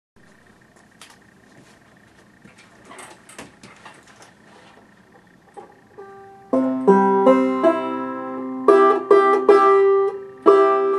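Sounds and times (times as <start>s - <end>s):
rustling: 0.3s - 5.8s.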